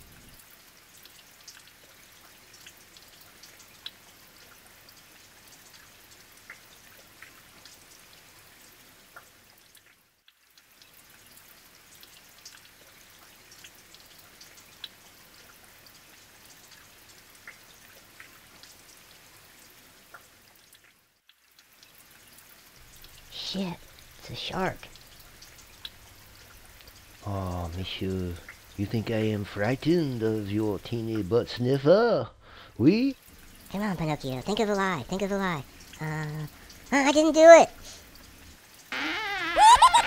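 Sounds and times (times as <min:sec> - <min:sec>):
faint steady hiss: 0:00.0 - 0:40.0.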